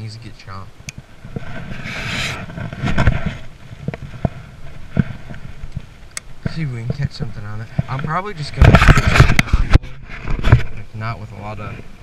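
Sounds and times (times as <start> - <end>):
microphone handling rustling: 0.8 - 12.0.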